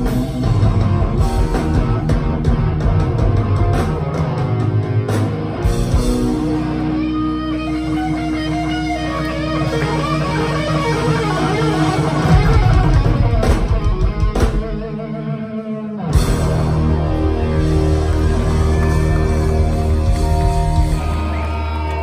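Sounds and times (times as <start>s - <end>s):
live rock band: 0.0s - 22.0s.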